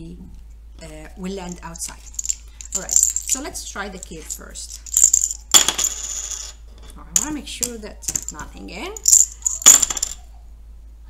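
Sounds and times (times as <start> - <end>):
plastic counters clattering on table: 4.0 - 10.2.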